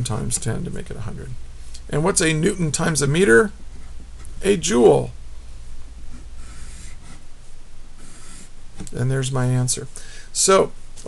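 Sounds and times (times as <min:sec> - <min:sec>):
pencil scratching on paper: 0:06.1 - 0:07.2, 0:08.0 - 0:08.5.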